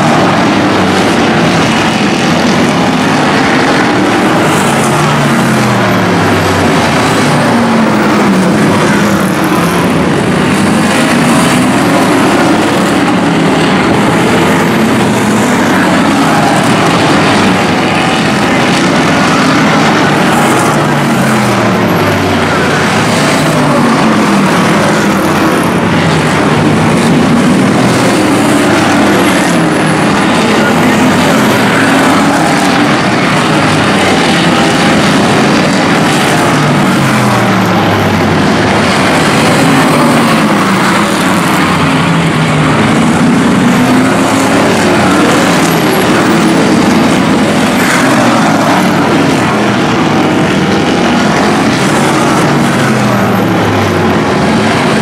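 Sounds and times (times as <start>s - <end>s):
race car engines passing: 0.0s - 55.0s.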